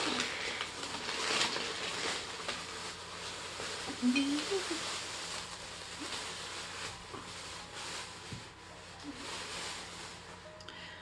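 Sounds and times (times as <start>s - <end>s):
rustling and handling noise: 0.0s - 11.0s.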